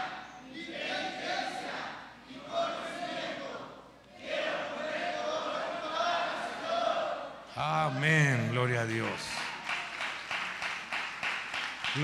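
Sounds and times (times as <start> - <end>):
congregation clapping in rhythm: 7.6 - 12.0.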